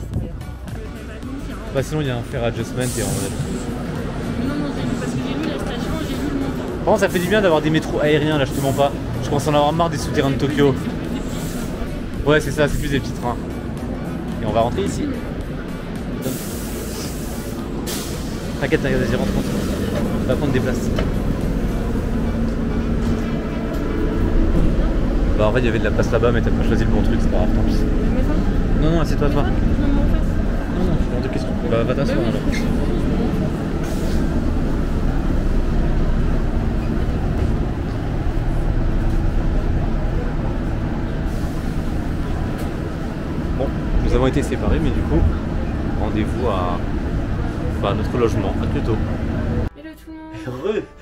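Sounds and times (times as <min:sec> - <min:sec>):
train low rumble: 0:00.0 - 0:50.5
compressed air hiss: 0:02.8 - 0:03.6, 0:16.2 - 0:18.6.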